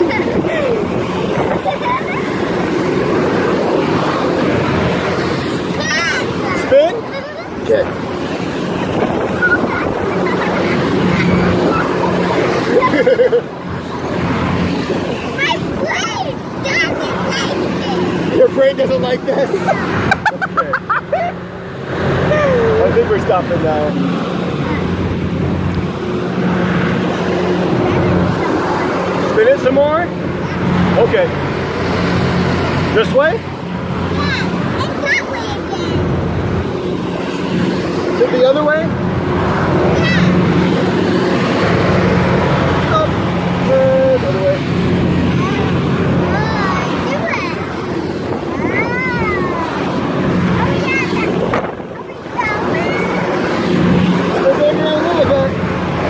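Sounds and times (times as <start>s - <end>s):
fair background noise: 0.0s - 56.0s
fairground ride machinery drone: 0.0s - 56.0s
person laughing: 1.6s - 2.4s, 9.4s - 11.8s, 12.7s - 13.5s, 19.6s - 21.4s, 22.3s - 22.9s.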